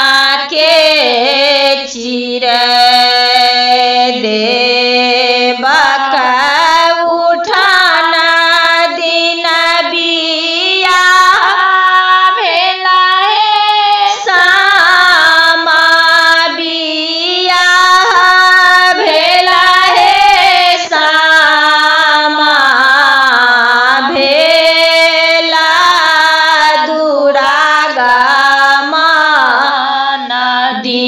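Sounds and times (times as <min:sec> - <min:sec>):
woman singing folk song: 0:00.0 - 0:31.0.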